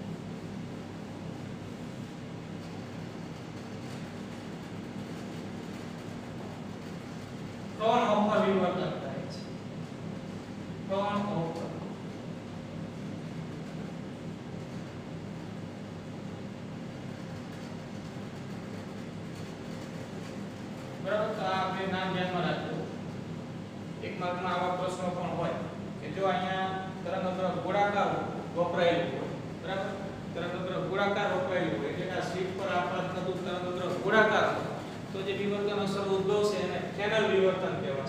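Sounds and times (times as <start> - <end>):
low hum with hiss: 0.0 - 38.0.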